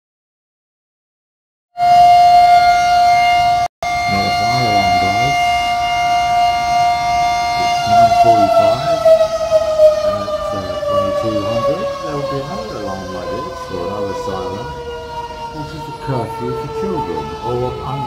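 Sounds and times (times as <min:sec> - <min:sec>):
outdoor siren: 0:01.8 - 0:18.0.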